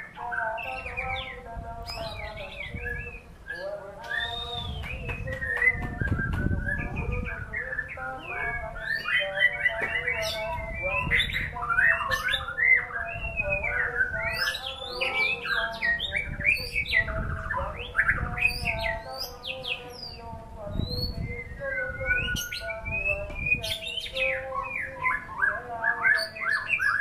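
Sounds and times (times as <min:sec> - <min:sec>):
bird singing whistles and trills: 0:00.0 - 0:27.0.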